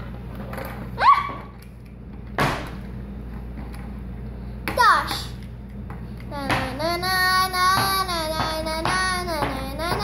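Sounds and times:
girl singing na na na: 0:06.2 - 0:10.0.

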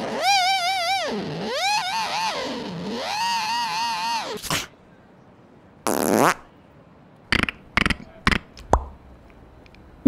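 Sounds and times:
beatbox buzzing mouth sound: 0:05.9 - 0:06.4, 0:07.3 - 0:08.5.

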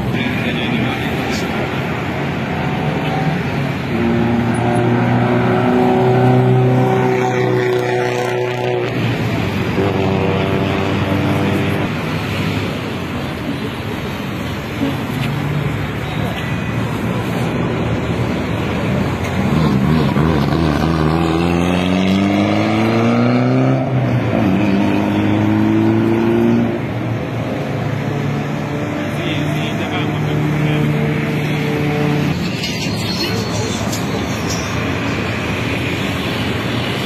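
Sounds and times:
car engine accelerating: 0:17.4 - 0:37.0.

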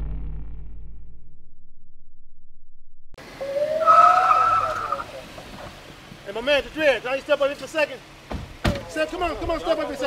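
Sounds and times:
car tyres squealing: 0:03.2 - 0:06.8.

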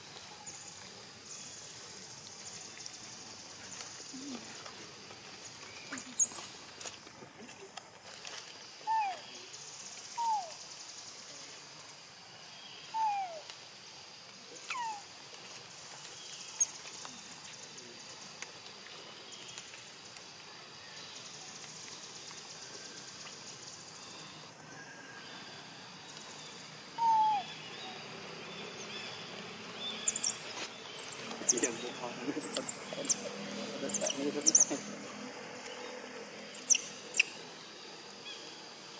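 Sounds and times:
high insect buzz: 0:26.5 - 0:38.9
baby monkey screaming: 0:27.0 - 0:27.5, 0:30.0 - 0:31.7, 0:33.9 - 0:34.7
falling animal calls: 0:27.0 - 0:27.5.

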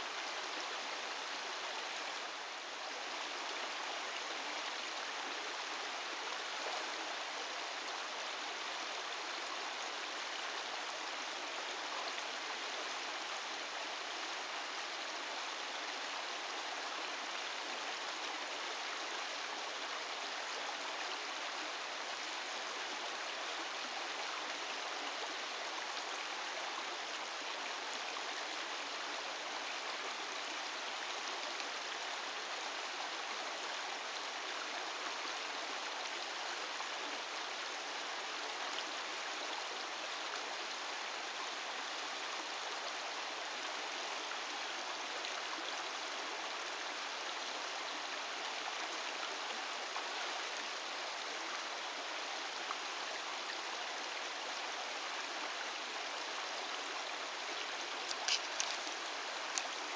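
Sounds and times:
creek water running over rocks: 0:00.0 - 0:59.9.

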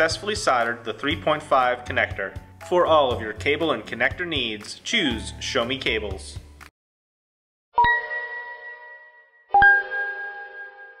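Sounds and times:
bell-like chime strikes: 0:07.8 - 0:11.0.

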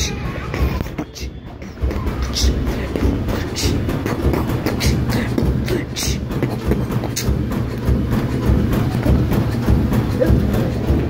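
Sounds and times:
washing machine thumping and clicking: 0:00.0 - 0:11.0.

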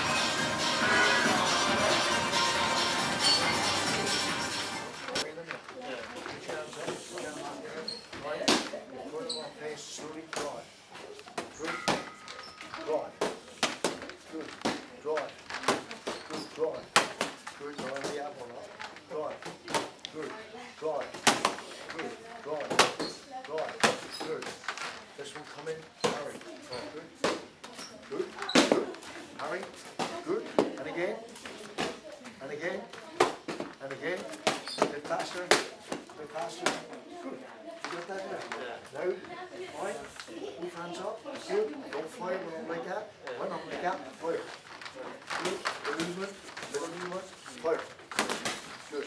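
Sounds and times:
indistinct voices: 0:00.0 - 0:05.2.

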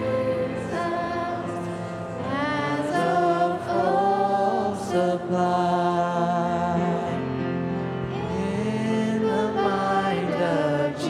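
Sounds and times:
group singing in harmony: 0:00.0 - 0:11.0.

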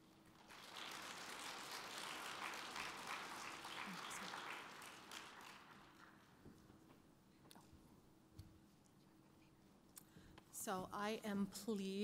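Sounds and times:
audience applauding: 0:00.2 - 0:06.4.

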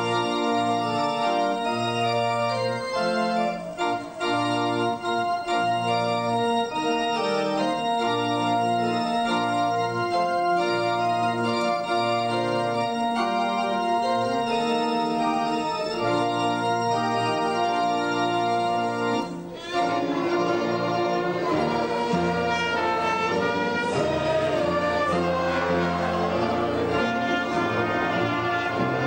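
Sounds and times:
organ playing hymn chords: 0:00.0 - 0:29.0.

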